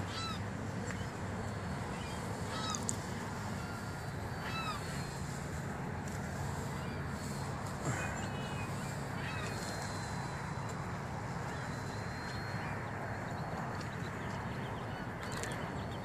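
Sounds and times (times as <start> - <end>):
bird calls: 0.0 - 16.0
steady outdoor hiss: 0.0 - 16.0.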